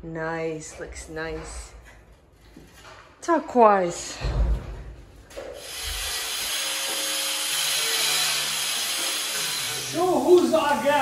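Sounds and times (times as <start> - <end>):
power tool rasping wood: 5.6 - 11.0.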